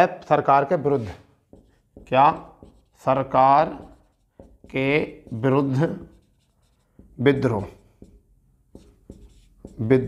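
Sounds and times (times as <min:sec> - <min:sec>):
marker pen writing on whiteboard: 0:00.8 - 0:10.0.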